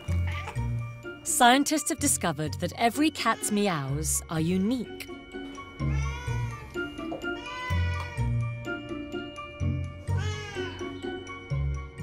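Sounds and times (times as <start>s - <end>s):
background music: 0.0s - 12.0s
cat meowing: 3.0s - 3.9s, 5.9s - 6.6s, 7.4s - 8.2s.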